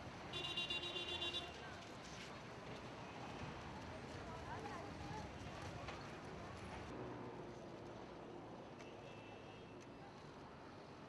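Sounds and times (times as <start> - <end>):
steady street background noise: 0.0 - 11.0.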